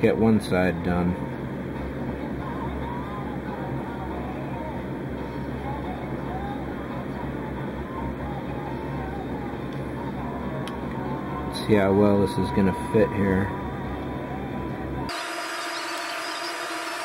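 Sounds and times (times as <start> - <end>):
low background hum: 0.0 - 17.0.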